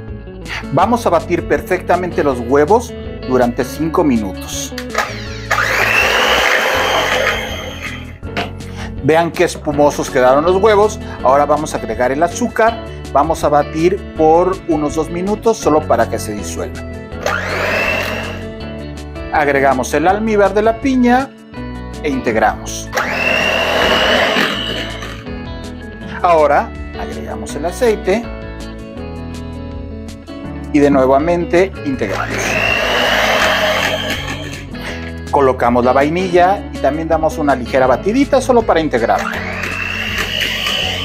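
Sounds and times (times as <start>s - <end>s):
background music: 0.0s - 41.0s
electric hand mixer whisking: 5.0s - 8.2s, 17.2s - 18.5s, 23.0s - 25.4s, 32.1s - 34.8s, 39.1s - 41.0s.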